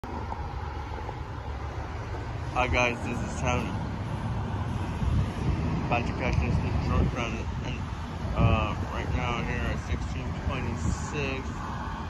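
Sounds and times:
road traffic: 0.0s - 12.0s
wind on microphone: 0.1s - 12.0s.

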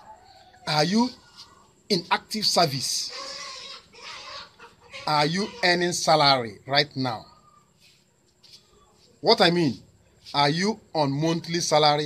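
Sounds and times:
chickens clucking: 0.0s - 2.2s, 3.0s - 6.4s, 7.0s - 9.2s.

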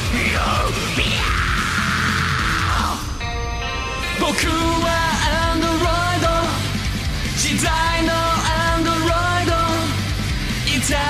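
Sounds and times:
heavy rock music: 0.0s - 11.0s
harsh held note: 3.0s - 5.0s.

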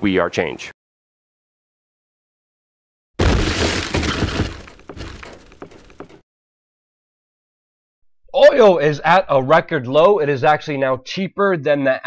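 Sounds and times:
block shattering crash: 3.2s - 6.2s.

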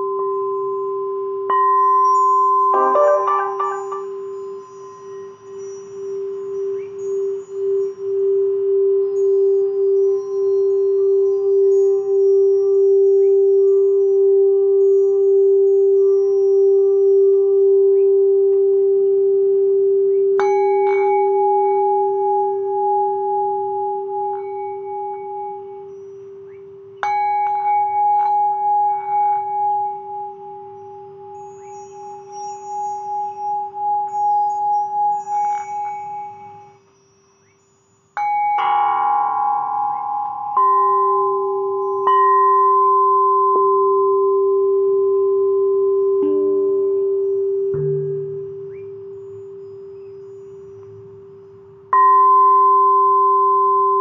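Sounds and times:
singing bowls ringing: 0.0s - 54.0s.

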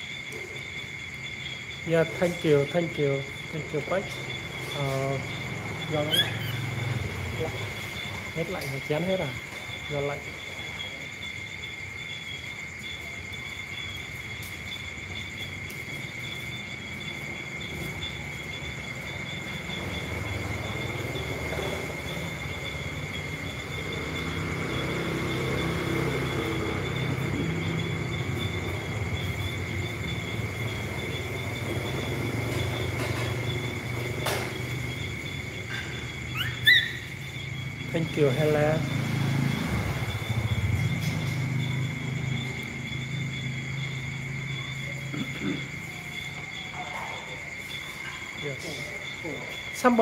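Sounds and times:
insects trilling: 0.0s - 50.0s.

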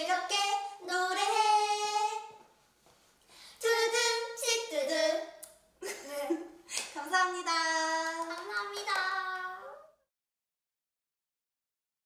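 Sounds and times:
hand clap: 6.7s - 7.0s, 8.0s - 9.3s.

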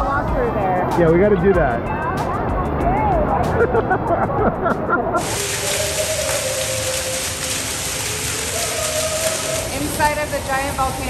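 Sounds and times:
water jet spraying and splashing: 5.2s - 11.0s.

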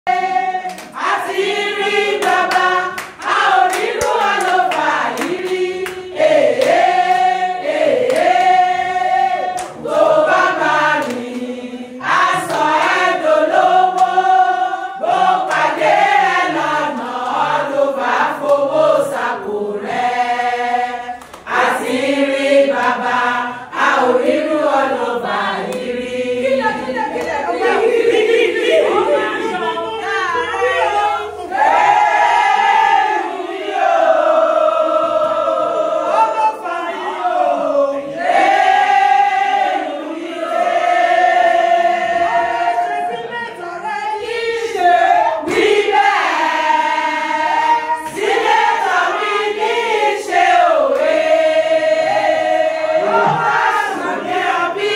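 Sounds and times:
women singing together: 0.0s - 54.9s
hand claps: 0.6s - 1.2s, 2.0s - 7.3s, 8.0s - 8.6s, 9.5s - 9.8s, 10.9s - 11.5s, 12.2s - 13.1s, 13.8s - 14.2s, 15.4s - 15.7s, 21.2s - 21.6s, 50.9s - 51.2s.

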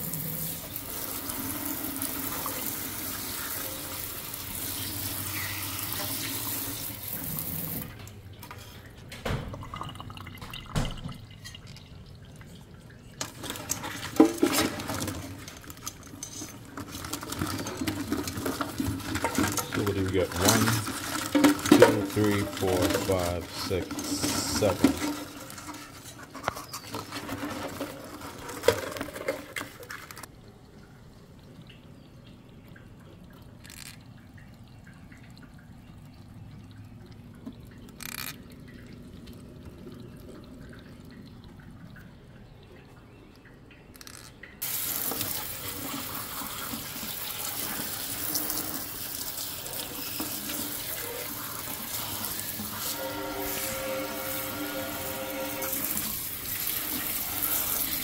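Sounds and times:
water spraying into steel sink: 44.6s - 58.0s.

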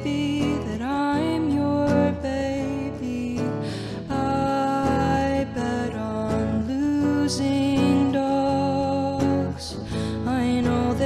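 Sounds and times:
strummed electric guitar: 0.0s - 11.0s
woman singing: 0.0s - 11.0s
quick breath in: 3.6s - 4.1s, 9.8s - 10.3s.

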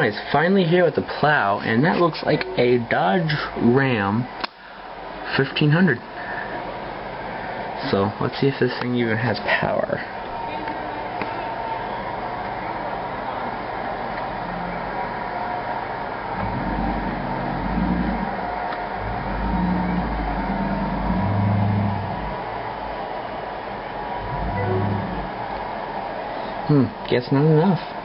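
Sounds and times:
truck engine revving: 16.0s - 23.0s, 24.0s - 25.9s.

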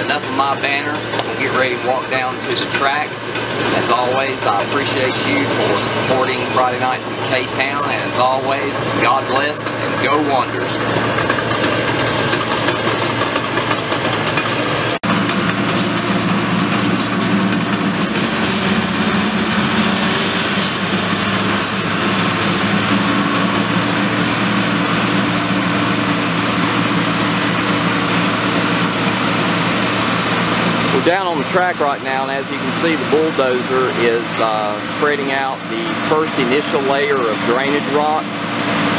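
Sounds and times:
track and stone clatter: 0.0s - 28.2s
bulldozer diesel engine running: 0.0s - 38.9s.

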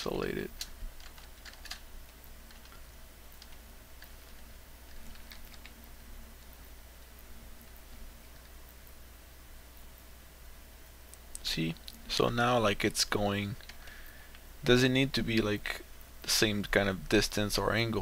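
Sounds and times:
steady low hum: 0.0s - 18.0s
computer keyboard clicks: 0.6s - 1.8s, 3.4s - 5.8s.

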